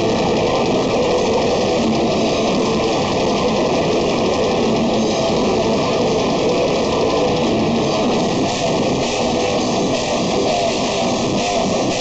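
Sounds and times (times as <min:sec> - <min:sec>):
metal band playing: 0:00.0 - 0:12.0.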